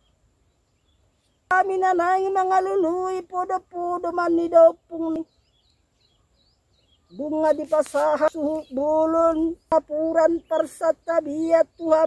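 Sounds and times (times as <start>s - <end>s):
small bird chirping: 0.0s - 12.0s.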